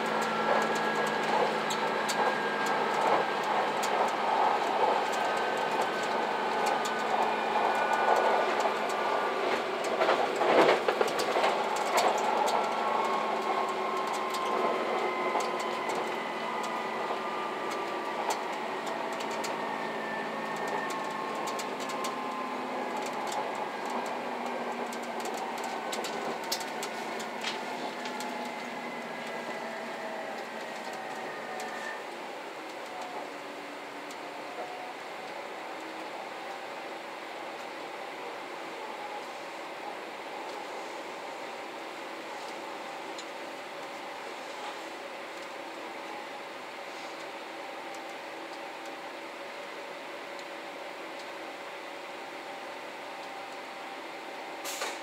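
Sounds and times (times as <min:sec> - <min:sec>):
wheels clicking over rail joints: 0:00.0 - 0:31.9
train running noise whining: 0:00.0 - 0:55.0.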